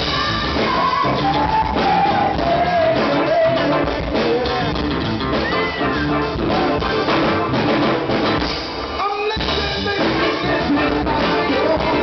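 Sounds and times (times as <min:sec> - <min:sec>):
drum kit: 0:00.0 - 0:12.0
electric bass: 0:00.0 - 0:12.0
electric guitar: 0:00.0 - 0:12.0.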